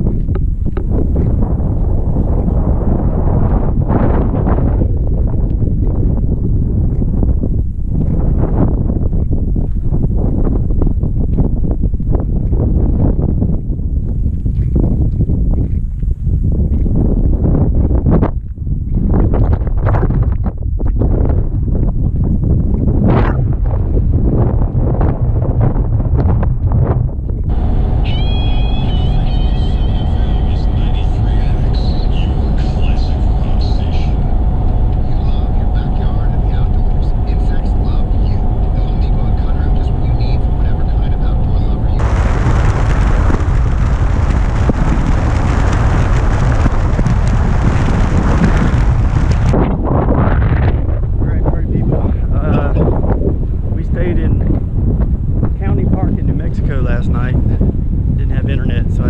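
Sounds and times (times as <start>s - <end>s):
gusty wind on microphone: 0.0s - 59.0s
vehicle driving on highway: 27.4s - 49.7s.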